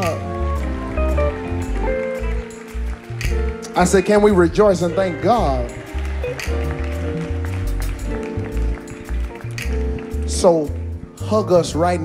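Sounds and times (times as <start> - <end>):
band playing held chords: 0.0 - 11.2
light percussion: 0.0 - 11.9
bass line: 0.0 - 12.0.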